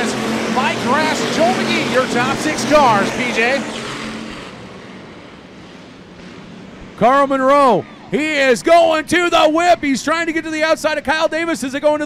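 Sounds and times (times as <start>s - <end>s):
race cars engine drone: 0.0s - 12.0s.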